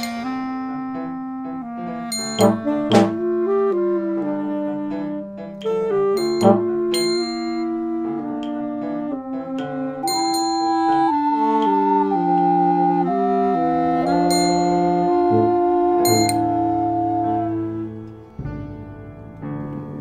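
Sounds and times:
brass and woodwind ensemble: 0.0s - 18.5s
metallic percussion strikes: 2.0s - 3.2s, 5.6s - 7.8s, 10.0s - 11.0s, 16.0s - 16.6s.

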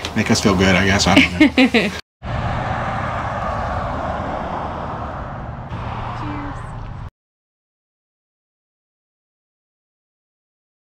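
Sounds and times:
vehicle passing on road: 2.2s - 7.1s.

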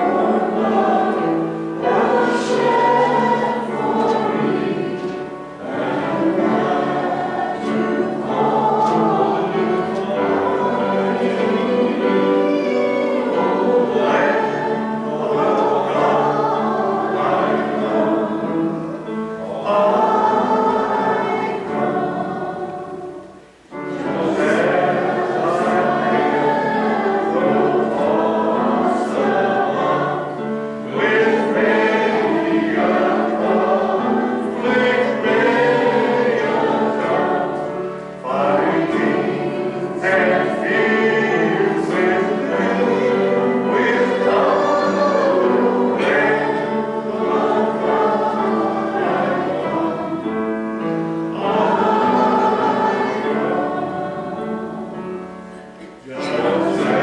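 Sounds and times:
group singing a hymn: 0.0s - 57.0s.

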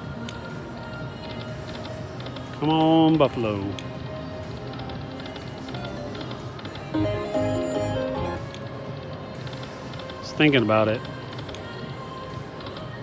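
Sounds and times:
slot machines din: 6.9s - 8.8s
short musical jingle: 7.0s - 8.5s.

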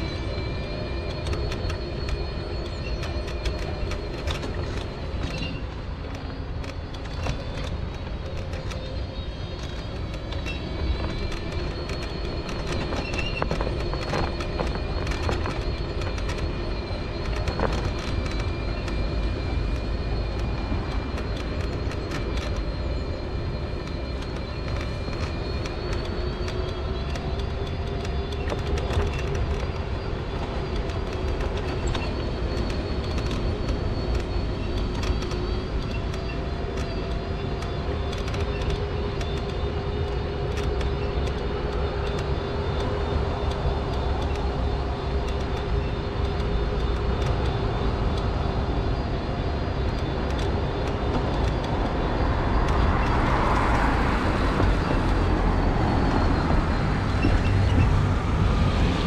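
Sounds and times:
wheels rumbling over snow: 0.0s - 59.0s.

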